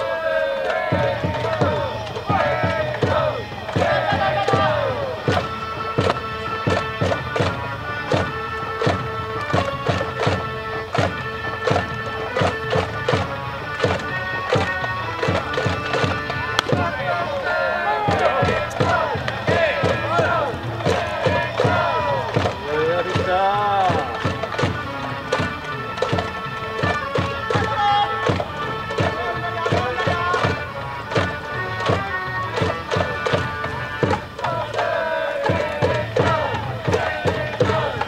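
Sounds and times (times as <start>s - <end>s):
fans singing: 0.0s - 38.0s
long held instrument notes: 0.0s - 38.0s
steady drumbeat: 0.0s - 38.0s.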